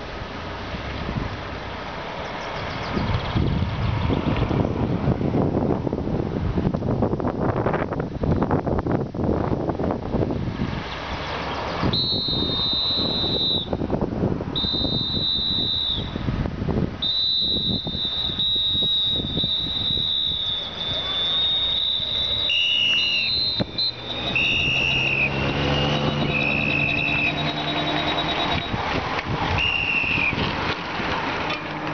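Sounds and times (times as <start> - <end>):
motorcycle engines: 0.0 - 31.9
traffic noise: 0.0 - 31.9
wind: 0.0 - 31.9
long whistle blasts: 11.8 - 13.8, 14.5 - 16.3, 17.0 - 28.8, 29.6 - 30.4
lower-pitched whistle: 11.8 - 13.8, 14.6 - 16.3, 17.0 - 28.8, 29.6 - 30.4.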